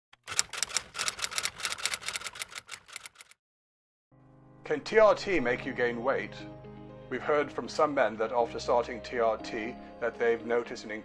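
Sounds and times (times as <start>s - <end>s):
typewriter keystroke clicks: 0.2s - 3.4s.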